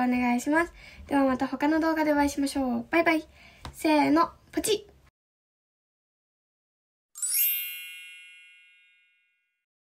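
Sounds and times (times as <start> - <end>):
bright chime ringing: 7.2 - 9.6.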